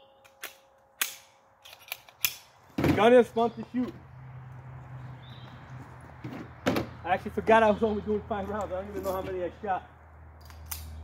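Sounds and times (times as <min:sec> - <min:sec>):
handgun handling: 0:00.2 - 0:02.6.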